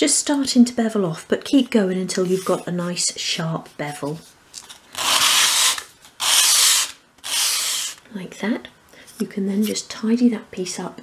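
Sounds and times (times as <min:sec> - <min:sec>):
wood rubbing on sandpaper: 0:05.0 - 0:08.0.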